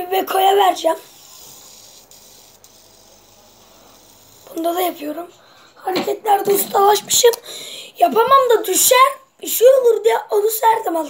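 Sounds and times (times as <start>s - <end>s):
fidget spinner spinning: 0.2s - 5.4s.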